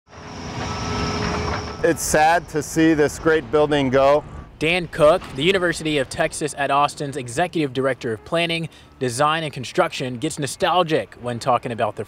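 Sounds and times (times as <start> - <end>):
excavator engine and hydraulics: 0.1 - 12.0.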